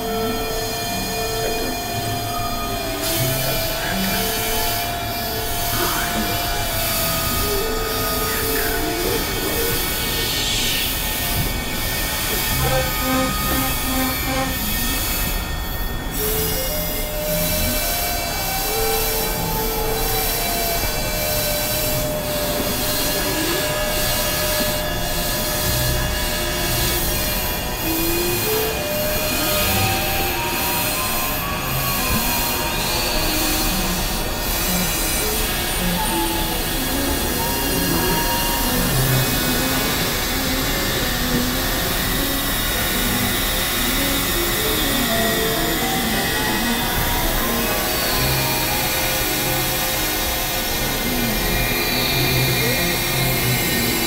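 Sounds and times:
dense noise wash: 0:00.0 - 0:54.0
held tones: 0:00.0 - 0:54.0.

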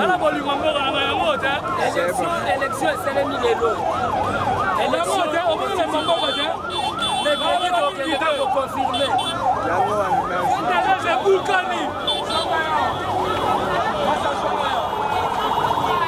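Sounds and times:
large outdoor crowd: 0:00.0 - 0:16.0
siren-like wails: 0:00.0 - 0:16.0.

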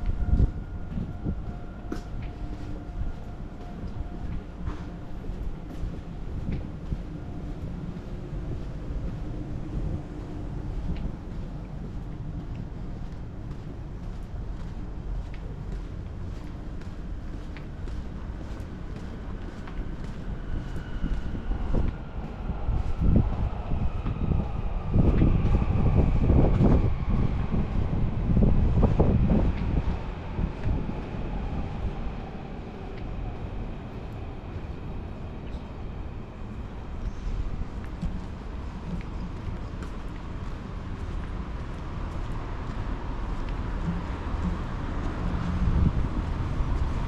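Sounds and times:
electric train rumble: 0:00.0 - 0:47.0.

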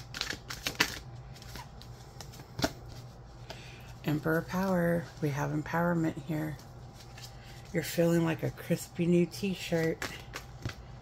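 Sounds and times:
cards snapping: 0:00.0 - 0:02.8
cards being shuffled by hand: 0:00.0 - 0:05.7, 0:06.4 - 0:08.8, 0:09.4 - 0:11.0.

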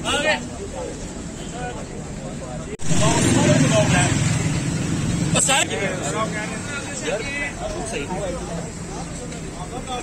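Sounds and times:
people talking: 0:00.0 - 0:04.6, 0:05.3 - 0:10.0
vehicle engine rumbling: 0:00.0 - 0:10.0.

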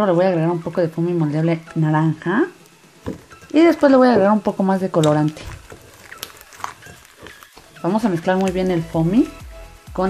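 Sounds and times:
slime crackling: 0:03.3 - 0:09.0
slime squelching: 0:04.9 - 0:08.8.

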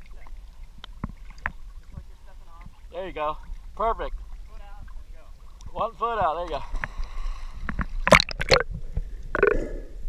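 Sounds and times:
seawater splashing and gurgling: 0:00.0 - 0:09.5
water slaps: 0:05.6 - 0:08.6.

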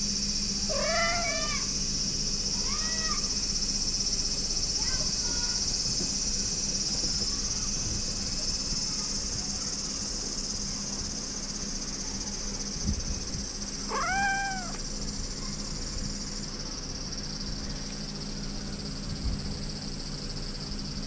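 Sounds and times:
high drone of insects: 0:00.0 - 0:21.0
cat meowing: 0:00.7 - 0:01.6, 0:13.9 - 0:14.8.

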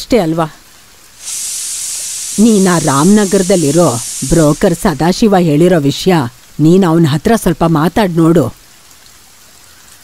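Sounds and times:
food sizzling in a pan: 0:01.2 - 0:05.7.

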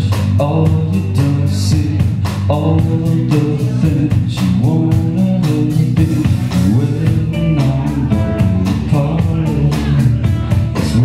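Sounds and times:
drum kit beat: 0:00.0 - 0:11.0
electric bass: 0:00.0 - 0:11.0
electric guitar: 0:00.0 - 0:11.0
man singing: 0:00.0 - 0:11.0.

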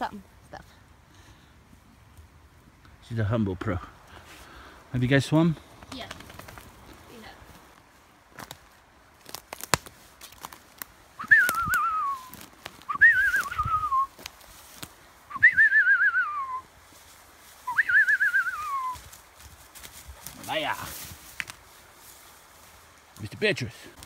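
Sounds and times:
person whistling for a dog: 0:11.2 - 0:14.1, 0:15.3 - 0:16.6, 0:17.7 - 0:19.0.

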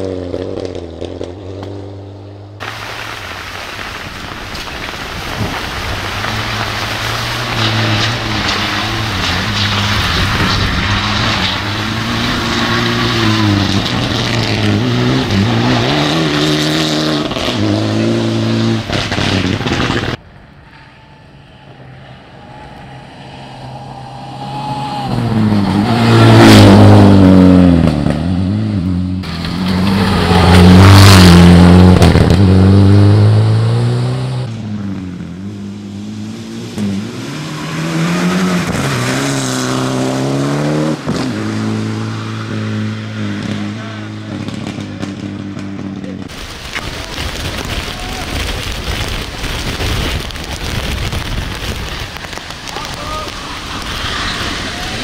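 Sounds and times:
rally car engines revving: 0:05.3 - 0:47.4, 0:50.3 - 0:55.0.

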